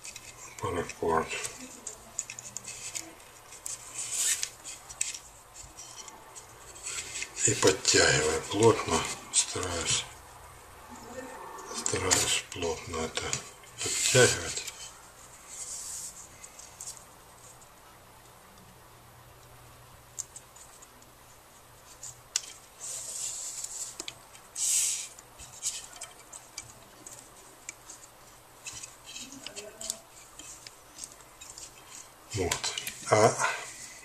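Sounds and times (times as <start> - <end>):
light rubbing and small clicks: 21.8 - 33.0.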